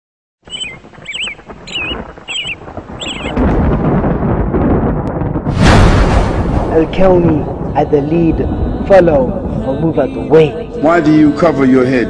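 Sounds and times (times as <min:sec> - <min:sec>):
bird chirping: 0:00.5 - 0:03.4
low thunder-like rumble: 0:00.5 - 0:11.7.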